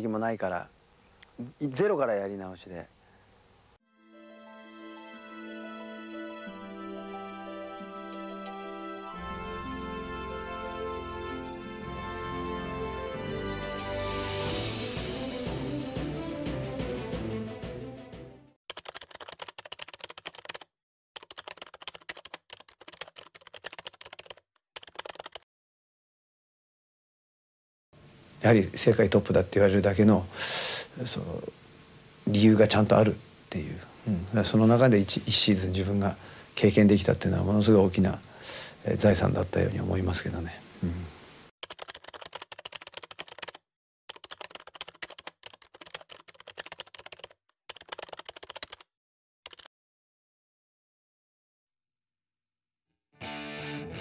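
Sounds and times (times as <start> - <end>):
rapid typing key clicks: 18.7 - 25.4, 41.6 - 48.8, 49.5 - 49.7.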